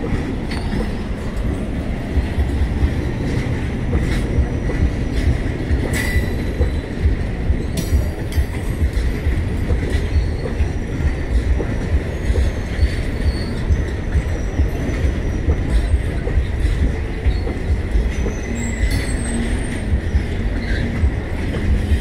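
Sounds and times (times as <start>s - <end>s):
train coaches rumbling past: 0.0s - 22.0s
high wheel squeal: 12.0s - 16.0s, 17.3s - 21.1s.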